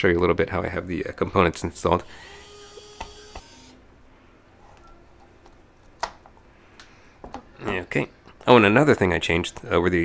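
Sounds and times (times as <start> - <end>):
electric screwdriver whirring: 2.2 - 3.8.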